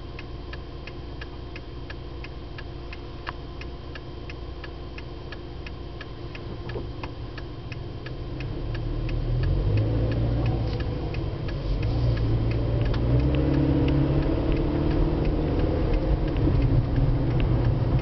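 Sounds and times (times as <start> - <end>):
car engine and road noise: 0.0 - 18.0
turn signal ticking: 0.0 - 18.0.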